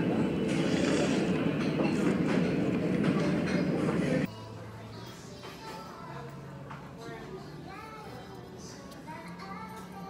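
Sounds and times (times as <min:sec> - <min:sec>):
busy restaurant voices din: 0:00.0 - 0:10.0.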